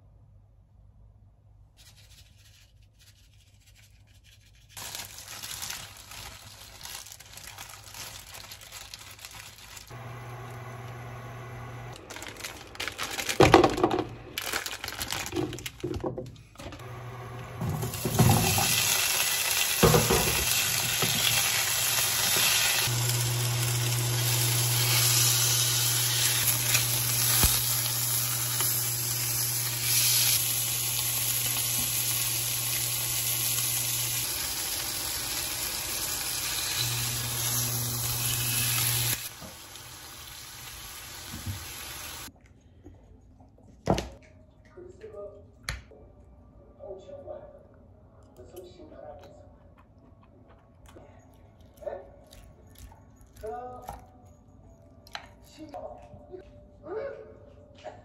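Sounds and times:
plastic rustling: 0:04.6 - 0:10.0, 0:11.9 - 0:16.6
steak sizzling in frying pan: 0:17.9 - 0:42.3.

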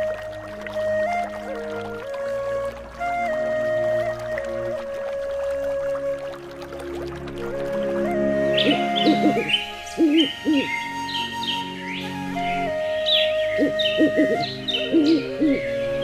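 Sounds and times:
background music: 0:00.0 - 0:16.0
owl hooting: 0:08.6 - 0:10.8, 0:13.1 - 0:15.6
bird chirps: 0:08.6 - 0:12.0, 0:13.0 - 0:15.6.

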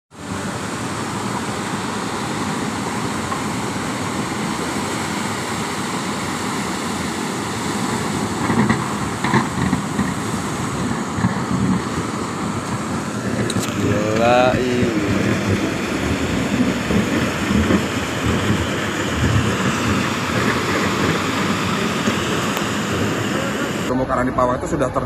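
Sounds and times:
surf breaking on stony beach: 0:00.1 - 0:24.0.

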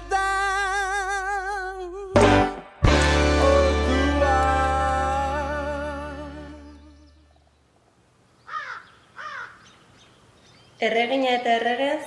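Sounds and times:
bird calling: 0:06.8 - 0:11.6.

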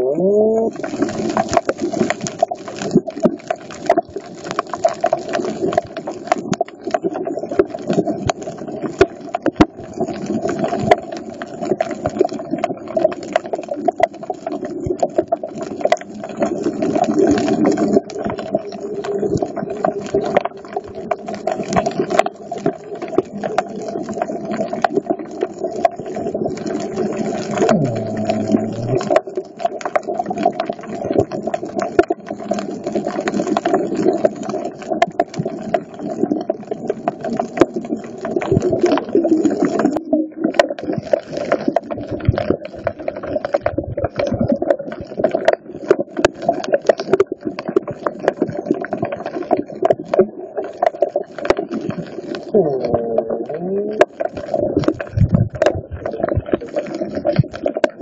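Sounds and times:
dense crackle of clicks: 0:00.6 - 0:58.0
low underwater drone: 0:15.4 - 0:30.8.

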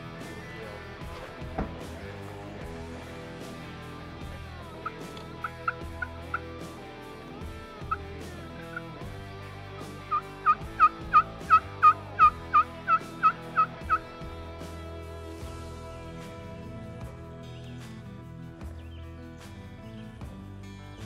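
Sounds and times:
turkey call hen yelps: 0:10.1 - 0:14.0.

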